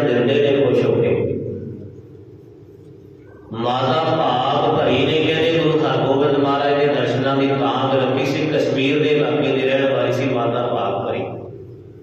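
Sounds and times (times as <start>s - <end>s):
faint low hum: 0.0s - 12.0s
man chanting: 3.5s - 11.5s.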